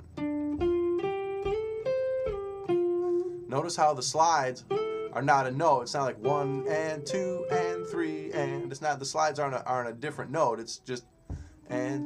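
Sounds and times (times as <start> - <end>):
electric guitar blues lick: 0.0 - 9.2.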